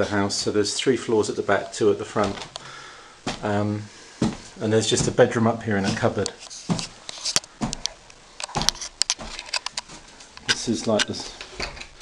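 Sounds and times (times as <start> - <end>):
soft thuds: 3.2 - 3.6, 4.2 - 7.0.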